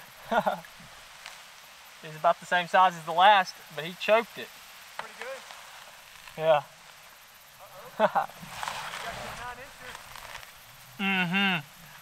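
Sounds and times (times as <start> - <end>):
light crackling and rustling: 0.0 - 11.0
person laughing faintly: 0.2 - 0.7, 11.0 - 11.7.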